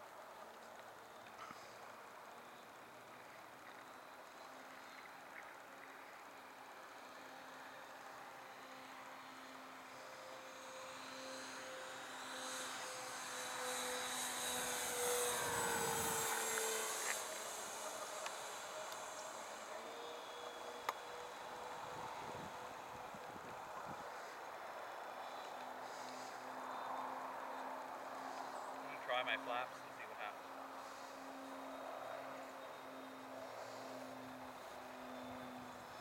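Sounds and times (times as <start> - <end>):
model airplane motors droning: 0.0 - 36.0.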